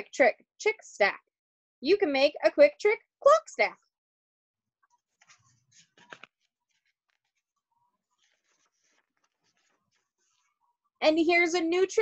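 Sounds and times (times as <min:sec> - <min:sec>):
book page rustling: 0:04.9 - 0:10.6
paper crackling: 0:05.0 - 0:10.6.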